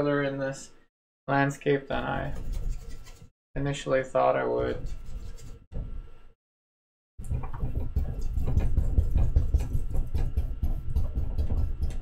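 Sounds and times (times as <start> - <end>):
brush scrubbing paint on canvas: 2.0 - 3.3, 4.8 - 5.7, 7.3 - 11.9.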